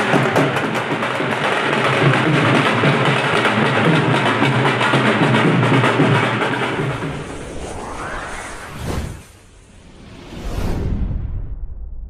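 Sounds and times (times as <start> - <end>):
dhol and tasha drums: 0.0 - 7.2.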